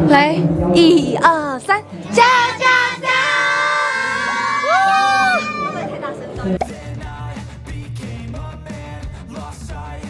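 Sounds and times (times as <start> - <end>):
young women shouting a cheer: 2.2 - 5.9.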